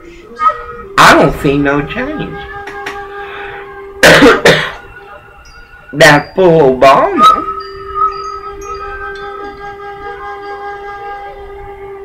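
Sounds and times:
steady pitched tone: 0.0 - 12.0.

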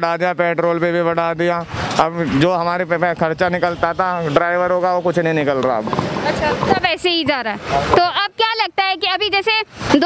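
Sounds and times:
man talking: 0.0 - 6.0.

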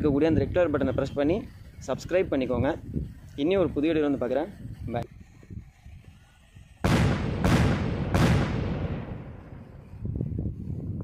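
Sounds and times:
explosion-like hit: 6.8 - 9.6.

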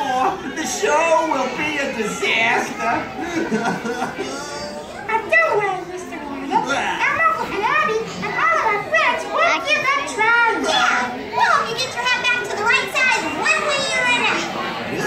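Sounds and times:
young children shouting: 0.0 - 15.0.

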